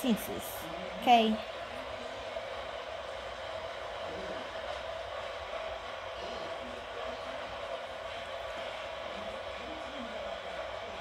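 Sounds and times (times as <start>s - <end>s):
faint low voices: 0.0s - 11.0s
fan whirring and humming: 0.0s - 11.0s.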